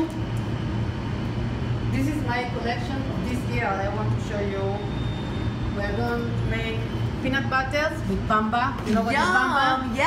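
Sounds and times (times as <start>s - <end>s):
low machinery hum: 0.0s - 10.0s.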